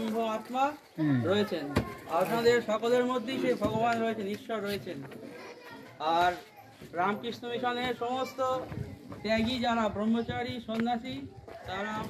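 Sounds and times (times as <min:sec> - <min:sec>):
man speaking: 0:00.0 - 0:05.1
faint background voices: 0:00.0 - 0:12.0.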